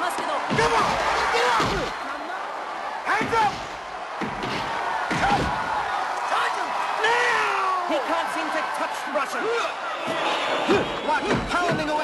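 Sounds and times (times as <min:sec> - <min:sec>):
crowd shouting and yelling: 0:00.0 - 0:12.0
punches landing with heavy thuds: 0:03.2 - 0:05.9.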